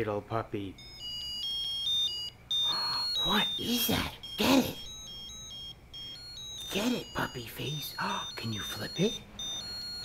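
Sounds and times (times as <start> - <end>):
electronic beeping melody: 0.7 - 10.0.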